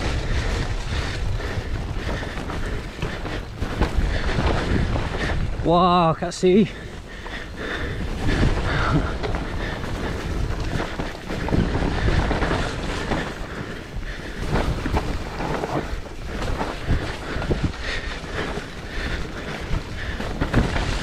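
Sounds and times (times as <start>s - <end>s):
bike knocking and rattling: 0.0s - 21.0s
tyres rolling over dirt and leaves: 0.0s - 21.0s
wind rushing over microphone: 0.0s - 21.0s.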